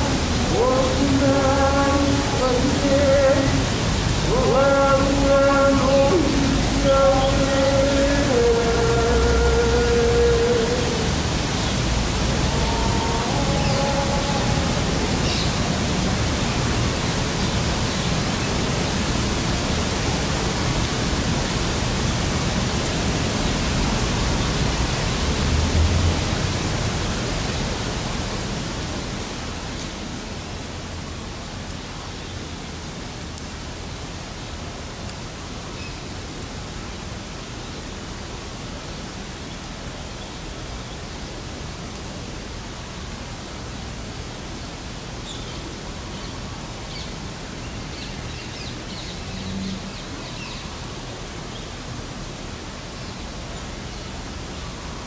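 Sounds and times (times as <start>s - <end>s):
rushing outdoor noise: 0.0s - 55.0s.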